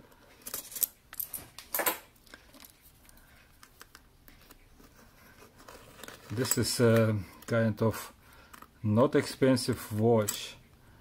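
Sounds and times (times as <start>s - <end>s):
faint handling noise: 0.1s - 10.6s.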